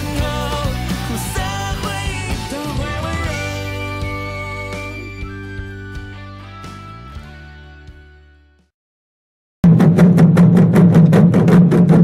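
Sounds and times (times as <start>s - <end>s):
drumroll: 9.6s - 12.0s.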